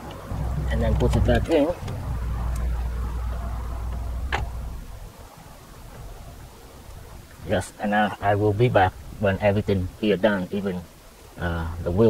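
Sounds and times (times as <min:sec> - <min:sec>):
low rumble: 0:00.0 - 0:07.6.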